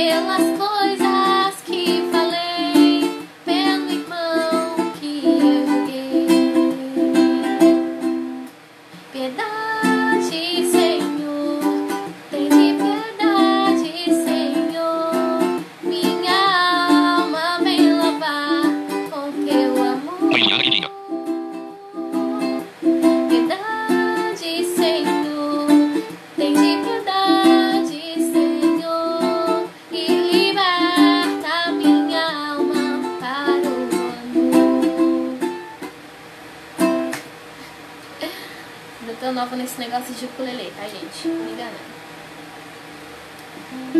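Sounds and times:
woman singing: 0:00.0 - 0:08.0, 0:09.1 - 0:35.6, 0:43.6 - 0:43.9
ukulele strumming: 0:00.0 - 0:08.5, 0:09.7 - 0:35.9.

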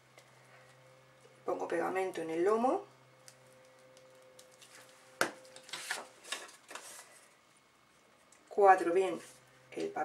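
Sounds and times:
paper rustling: 0:03.6 - 0:07.3.

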